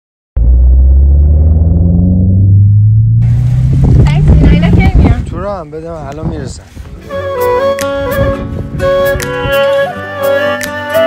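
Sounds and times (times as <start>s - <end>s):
deep cinematic bass boom: 0.4s - 5.4s.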